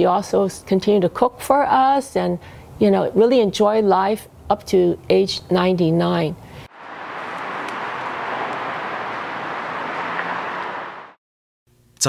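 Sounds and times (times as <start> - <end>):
outdoor background hiss: 0.0 - 11.2.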